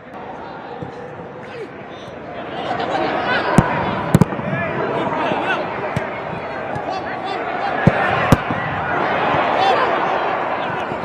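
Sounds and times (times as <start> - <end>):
players shouting: 0.0 - 11.0
football being kicked: 5.9 - 6.9, 7.8 - 8.7.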